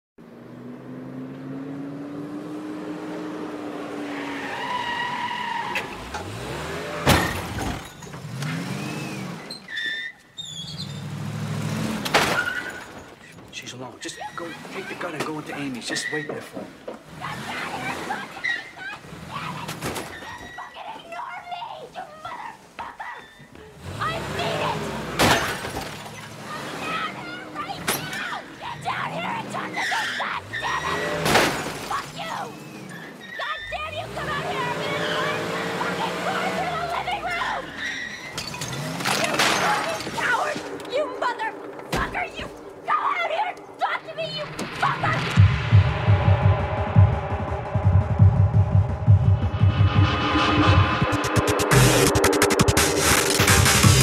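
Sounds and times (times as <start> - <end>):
voice-like fragments: 44.0 - 45.4
low swell: 44.5 - 53.5
loud sudden crash: 44.5 - 53.6
sustained gliding synth tones: 45.2 - 53.8.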